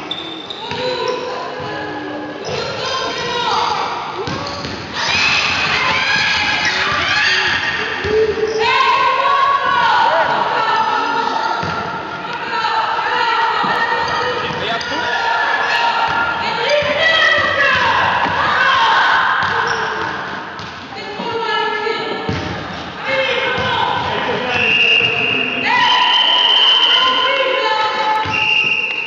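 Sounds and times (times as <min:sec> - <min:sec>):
basketball bouncing on court: 0:04.2 - 0:04.9.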